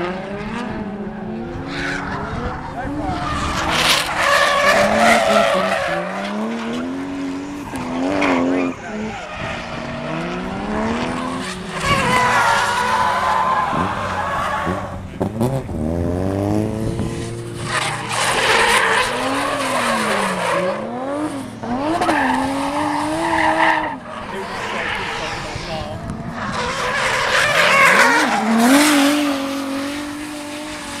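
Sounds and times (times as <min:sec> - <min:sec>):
car engine revving: 0:00.0 - 0:31.0
tyres squealing on asphalt: 0:01.2 - 0:15.4, 0:17.4 - 0:31.0.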